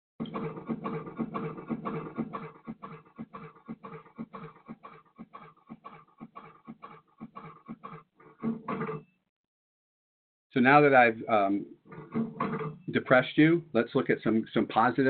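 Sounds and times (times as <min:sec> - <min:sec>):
cash register clicks and rattles: 0:00.2 - 0:02.9, 0:08.4 - 0:09.1, 0:11.9 - 0:12.9.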